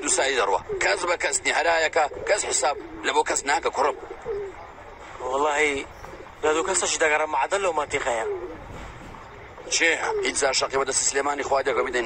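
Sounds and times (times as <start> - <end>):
pigeon cooing: 0.0 - 12.0.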